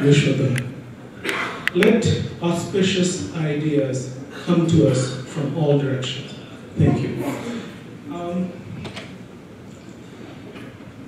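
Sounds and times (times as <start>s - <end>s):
low rumble of hall: 0.0s - 11.0s.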